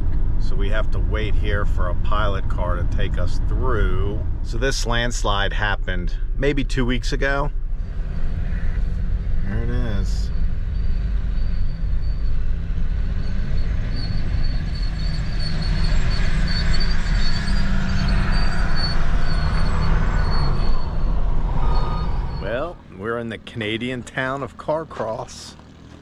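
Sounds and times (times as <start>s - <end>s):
van road noise rumble: 0.0s - 26.0s.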